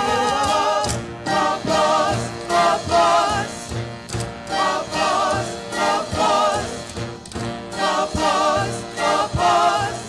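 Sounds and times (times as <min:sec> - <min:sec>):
band accompaniment: 0:00.0 - 0:10.0
chorus singing: 0:00.0 - 0:10.0.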